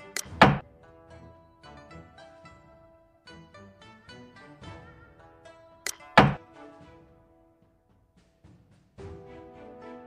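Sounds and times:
wooden piece clacks: 0.0 - 0.6, 5.9 - 6.4
plucked-string background music: 0.0 - 10.0.

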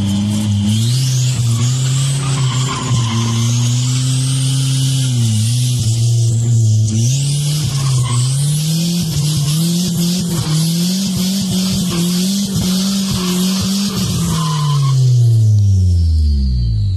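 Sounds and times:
tires squealing: 0.0 - 15.6
engine revving high: 0.0 - 16.9.

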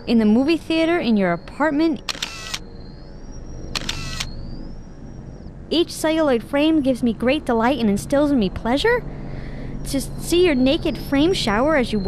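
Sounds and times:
camera shutter click and whir: 2.1 - 2.7, 3.7 - 4.3
flash recharging whine: 2.1 - 5.5.

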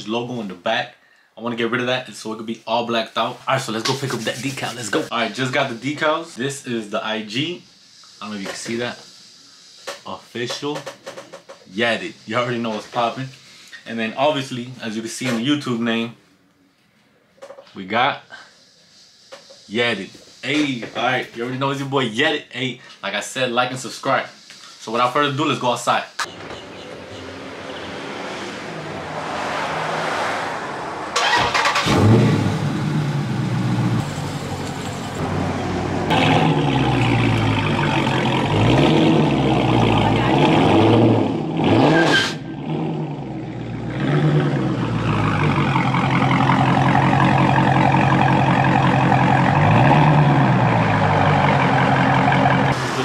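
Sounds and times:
car engine idling and revving: 26.2 - 53.0
car engine starting: 26.3 - 53.0.

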